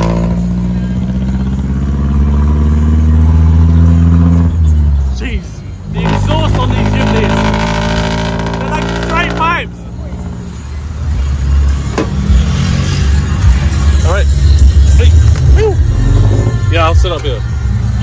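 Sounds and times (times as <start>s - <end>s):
vehicle engine running: 0.0s - 18.0s.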